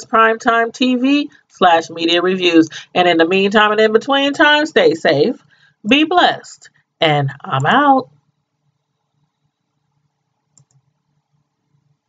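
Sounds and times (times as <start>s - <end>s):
small clicks: 10.5s - 10.9s.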